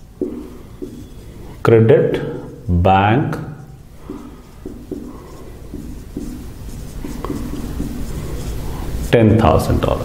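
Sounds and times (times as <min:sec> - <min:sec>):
marker writing on whiteboard: 0:00.0 - 0:10.0
steady low hum: 0:00.0 - 0:10.0.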